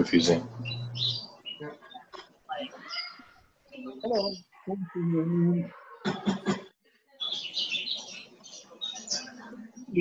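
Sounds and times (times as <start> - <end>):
people talking over video call: 0.0 - 10.0.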